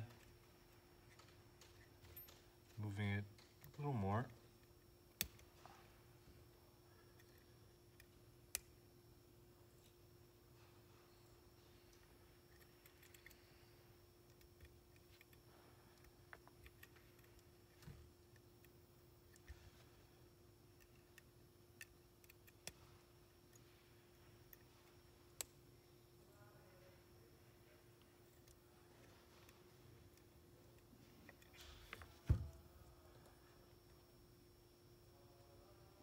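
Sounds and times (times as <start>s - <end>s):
faint steady hum: 0.0s - 36.0s.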